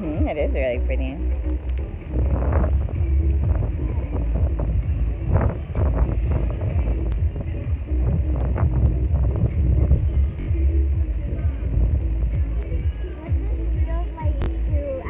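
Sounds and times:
background music: 0.0s - 15.0s
wind buffeting microphone: 0.0s - 15.0s.

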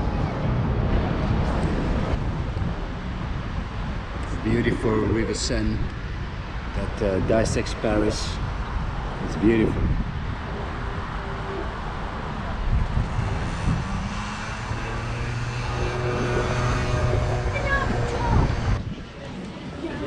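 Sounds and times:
city traffic noise: 0.0s - 20.0s
low engine drone: 9.1s - 18.8s.

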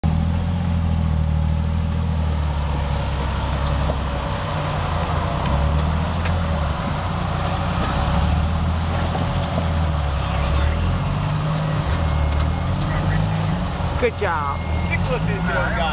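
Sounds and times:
engine revving at low revs: 0.0s - 15.9s.

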